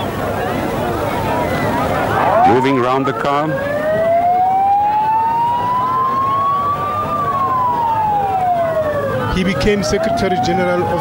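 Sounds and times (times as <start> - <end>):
vehicle siren wailing: 1.6 - 11.0.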